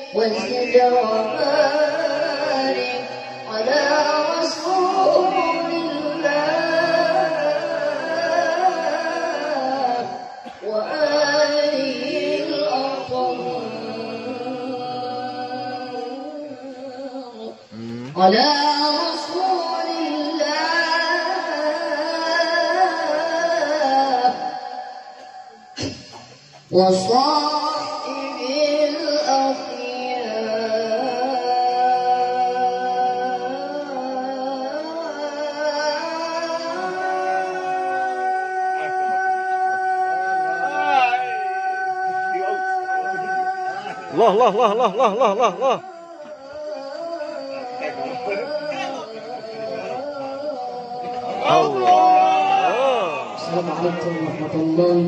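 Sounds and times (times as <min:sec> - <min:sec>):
woman reciting melodically into microphone: 0:00.0 - 0:52.2, 0:53.4 - 0:55.0.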